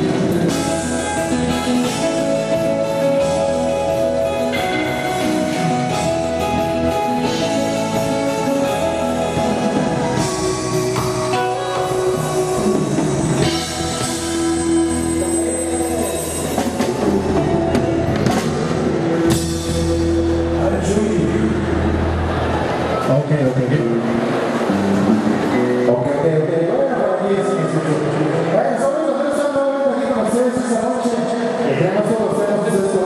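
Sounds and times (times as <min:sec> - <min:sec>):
live band holding a chord: 0:00.0 - 0:28.5.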